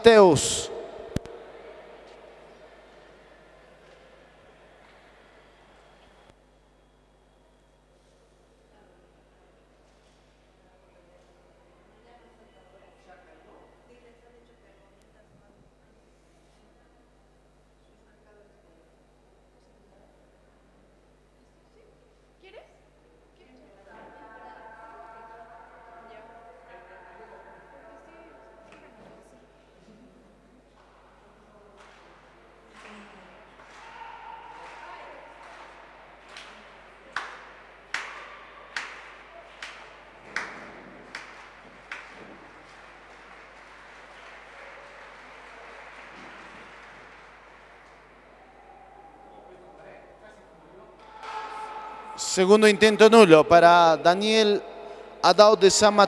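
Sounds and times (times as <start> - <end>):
murmur of voices: 0.0 - 6.2, 48.0 - 56.0
rhythmic hand-clapping: 31.8 - 48.6.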